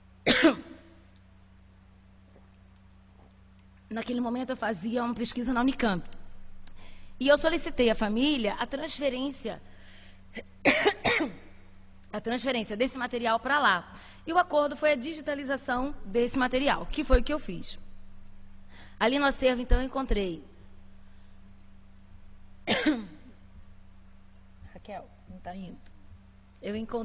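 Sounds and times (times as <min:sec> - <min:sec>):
steady low hum: 0:00.0 - 0:27.0
woman clearing her throat: 0:00.2 - 0:01.0, 0:10.4 - 0:11.5, 0:22.7 - 0:23.4
woman coughing: 0:00.2 - 0:01.0, 0:10.3 - 0:11.5, 0:22.6 - 0:23.4
woman speaking: 0:03.9 - 0:06.2, 0:07.2 - 0:09.6, 0:12.1 - 0:17.8, 0:19.0 - 0:20.5, 0:24.7 - 0:25.9, 0:26.6 - 0:27.0.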